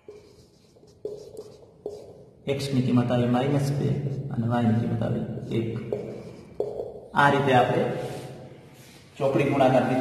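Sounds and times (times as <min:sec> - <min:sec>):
marker tapping whiteboard: 0:00.0 - 0:02.4, 0:05.4 - 0:07.2
marker writing on whiteboard: 0:00.0 - 0:10.0.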